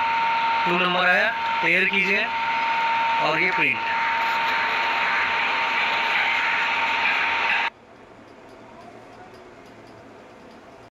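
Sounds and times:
label printer whirring: 0.0 - 7.7.

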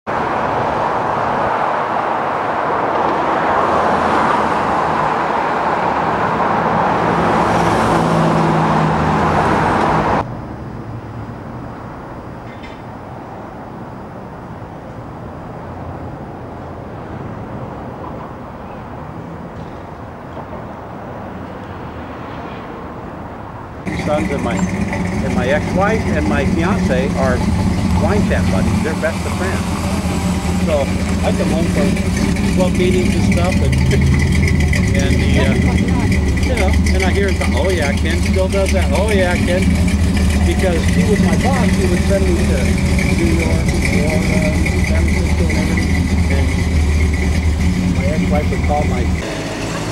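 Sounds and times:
road traffic noise: 0.0 - 49.9
vehicle engine rising: 0.1 - 12.4, 23.8 - 49.9.

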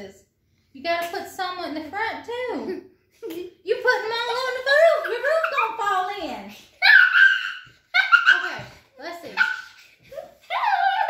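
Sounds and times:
young child giggling and vocalizing: 6.8 - 8.6.

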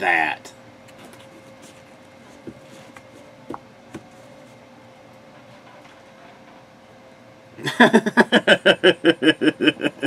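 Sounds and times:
man laughing hard: 7.6 - 10.0.

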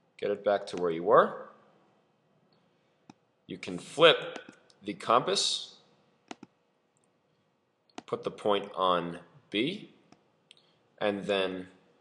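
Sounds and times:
computer mouse clicks: 6.3 - 7.1.

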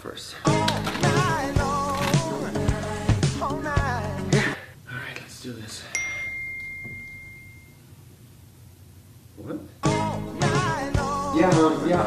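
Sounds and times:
high electronic ding: 6.0 - 7.8.

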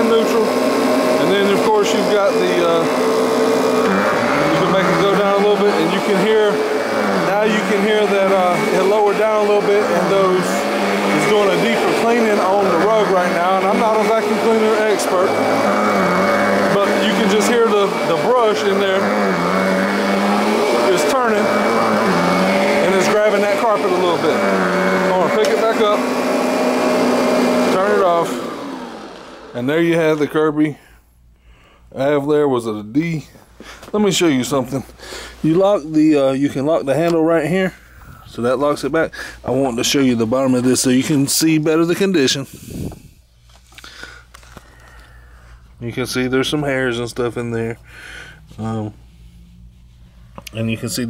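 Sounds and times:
vacuum cleaner motor drone: 0.0 - 30.4
brush roll grabbing carpet: 0.1 - 29.4.

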